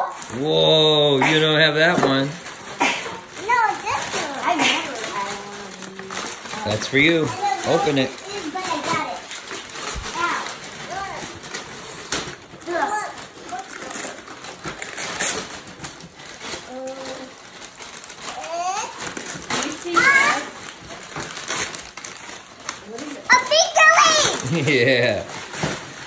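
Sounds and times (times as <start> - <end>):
wrapping paper crackling and tearing: 0.0 - 26.0
children calling and chattering: 2.8 - 11.5, 23.0 - 24.7.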